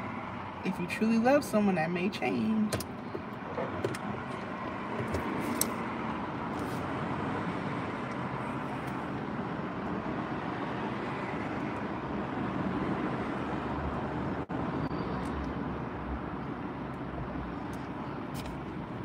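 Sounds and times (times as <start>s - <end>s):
car cabin hum and hiss: 0.0s - 12.5s.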